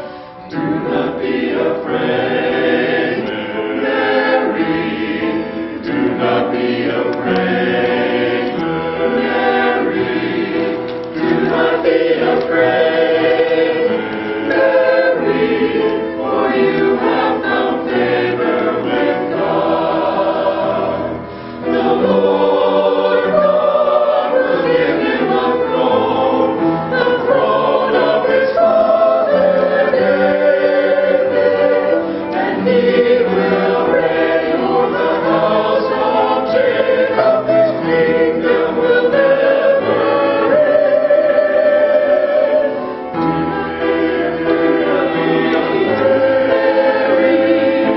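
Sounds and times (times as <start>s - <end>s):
mixed choir singing: 0.0s - 47.9s.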